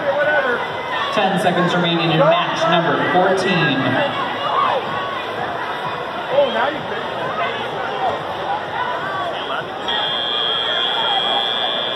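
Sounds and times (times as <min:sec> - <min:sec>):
crowd chatter in a hall: 0:00.0 - 0:11.9
loud high-pitched buzzer: 0:09.9 - 0:11.9.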